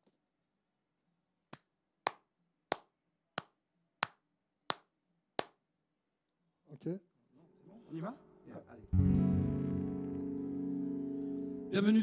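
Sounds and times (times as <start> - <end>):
person clapping hands: 1.5 - 5.6.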